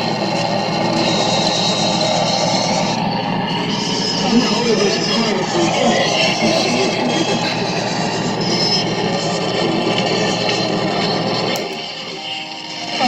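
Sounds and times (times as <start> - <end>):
harsh noise music: 0.0 - 13.0
steady low drone: 0.0 - 13.0.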